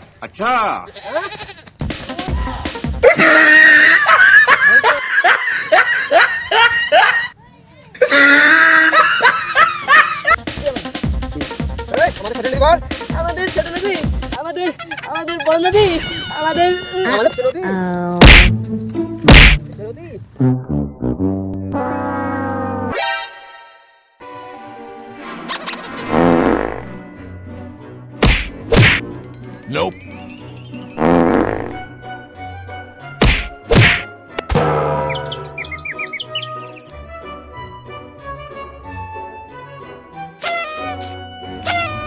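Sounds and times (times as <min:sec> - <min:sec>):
person crying out: 0:02.2 - 0:04.1, 0:08.0 - 0:09.1
loud sharp slapstick whacks: 0:18.2 - 0:18.6, 0:19.3 - 0:19.7, 0:28.2 - 0:29.0, 0:33.2 - 0:34.5
high bird-like chirps: 0:35.1 - 0:36.9.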